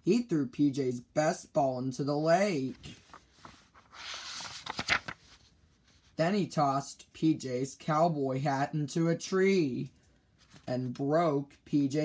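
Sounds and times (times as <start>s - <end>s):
paper page turning: 2.6s - 6.2s, 10.4s - 10.9s.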